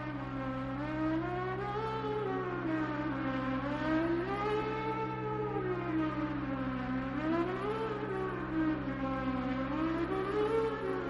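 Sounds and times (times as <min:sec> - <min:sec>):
siren-like wailing tone: 0:00.0 - 0:11.0
steady low drone: 0:00.0 - 0:11.0.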